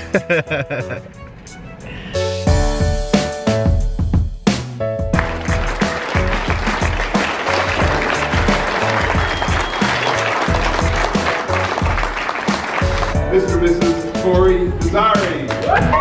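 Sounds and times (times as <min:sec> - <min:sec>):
music with steady beat: 0:00.0 - 0:16.0
audience applauding: 0:05.2 - 0:13.2.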